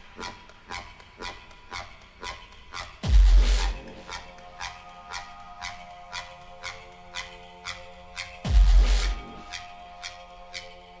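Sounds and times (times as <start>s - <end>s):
electronic dance track breakdown: 3.0s - 5.5s, 8.4s - 10.0s.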